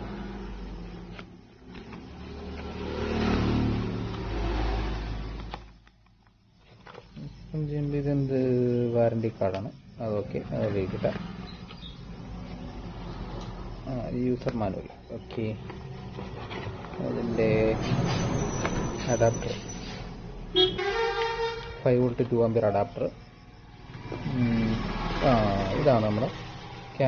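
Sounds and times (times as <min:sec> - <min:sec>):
paper and cardboard rustling: 0:06.6 - 0:07.2, 0:15.6 - 0:18.0
man talking: 0:07.2 - 0:11.2, 0:13.9 - 0:15.6, 0:17.0 - 0:17.9, 0:21.8 - 0:23.2.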